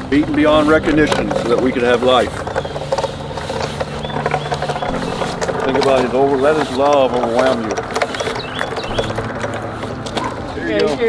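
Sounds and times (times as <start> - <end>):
wheel rolling on asphalt: 0.0 - 11.0.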